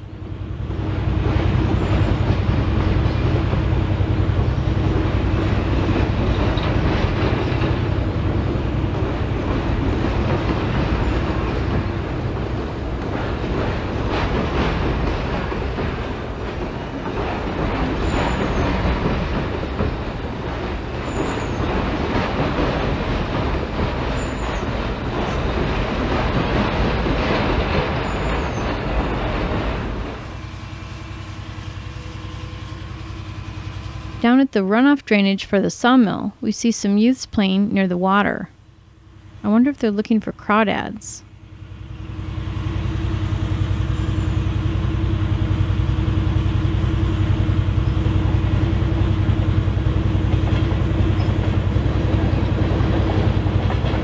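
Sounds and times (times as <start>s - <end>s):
engine hum: 0.0s - 35.4s, 38.5s - 54.0s.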